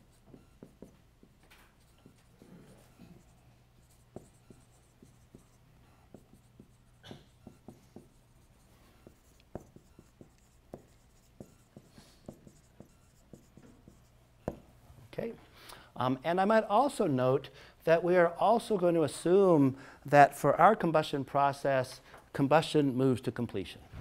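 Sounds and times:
marker writing on whiteboard: 0.0 - 14.7.

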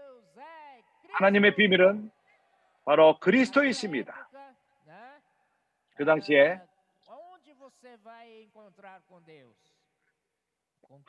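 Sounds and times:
voice trailing off: 6.0 - 6.6.

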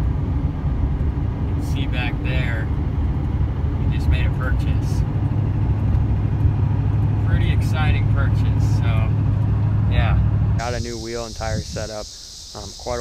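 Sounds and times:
road noise: 0.0 - 13.0
truck engine drone: 0.0 - 13.0
crickets chirping: 6.2 - 13.0.

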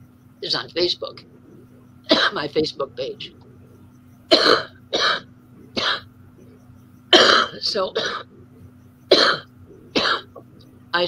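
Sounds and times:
woman coughing: 2.1 - 2.4, 4.3 - 6.1, 7.1 - 8.3, 9.1 - 10.4.

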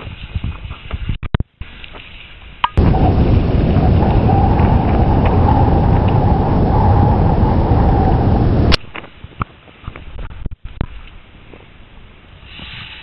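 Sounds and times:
strong wind buffeting microphone: 2.8 - 8.9.

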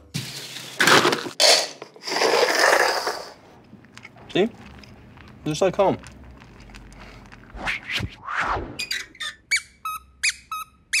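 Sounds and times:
squeaky toy squeaking: 8.8 - 11.0.

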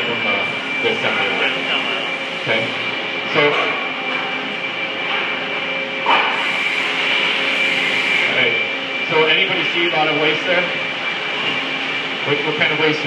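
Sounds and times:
machinery hum with high whine: 0.0 - 13.0.

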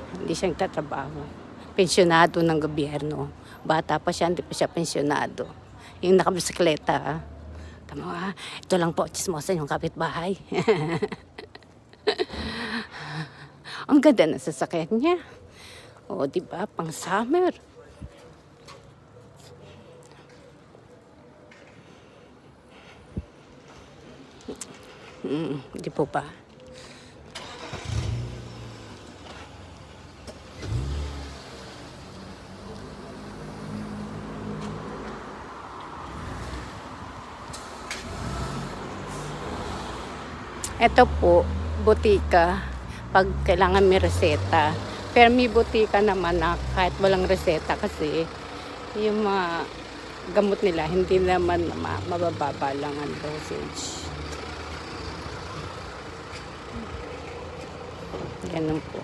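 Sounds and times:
car engines in traffic: 0.0 - 13.7, 17.8 - 59.0.

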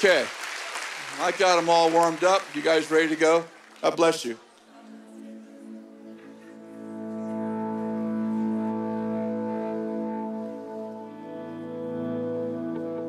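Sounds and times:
band playing held chords: 5.6 - 13.0.

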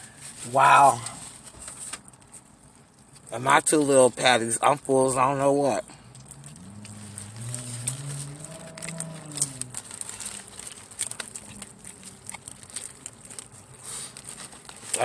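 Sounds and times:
closed-mouth humming: 5.9 - 15.0
person chewing wetly: 6.0 - 15.0.

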